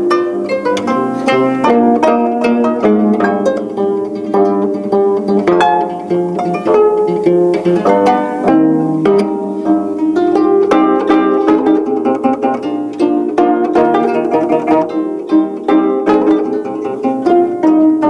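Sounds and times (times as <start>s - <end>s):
plucked zithers playing together: 0.0s - 18.0s.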